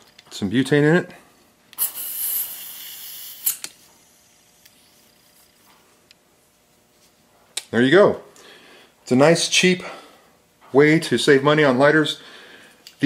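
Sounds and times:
gas hissing from can nozzle: 1.8s - 3.7s.

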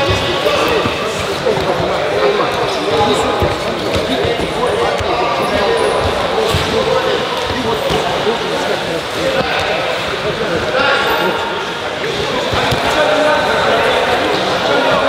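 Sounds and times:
many people talking: 0.0s - 15.0s.

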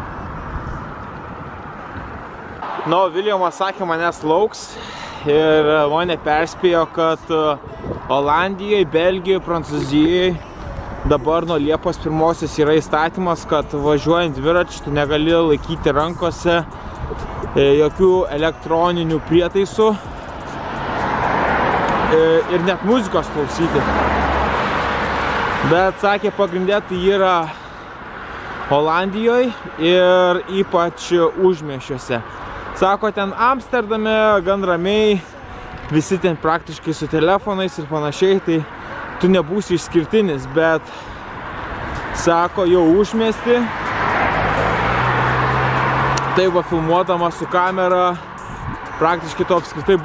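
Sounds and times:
car approaching: 0.0s - 50.0s
engine hum: 4.3s - 30.6s, 38.2s - 50.0s
car passing by: 19.5s - 30.6s, 38.4s - 50.0s.

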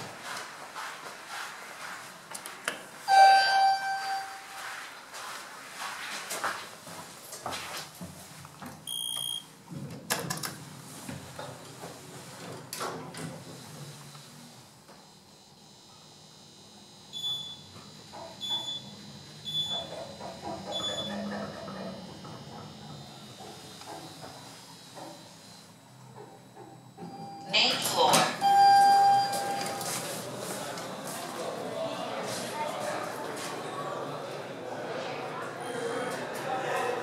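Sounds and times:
elevator chime ding: 3.1s - 4.6s, 28.4s - 29.9s
elevator floor-passing beep: 3.1s - 4.6s, 8.9s - 9.5s, 17.1s - 17.7s, 18.4s - 20.0s, 20.6s - 23.2s, 26.9s - 27.8s, 28.4s - 29.9s
elevator humming: 10.6s - 32.3s.

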